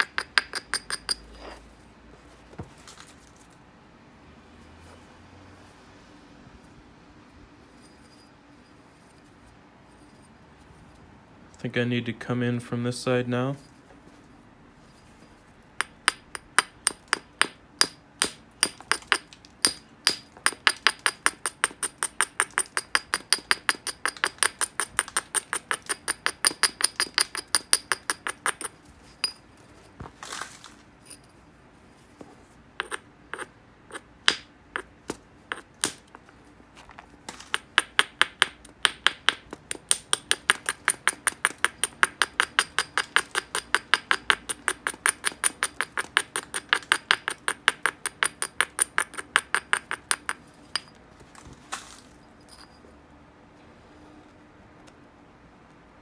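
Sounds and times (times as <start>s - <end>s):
hammerstone clicking on obsidian: 32.8s - 36.2s.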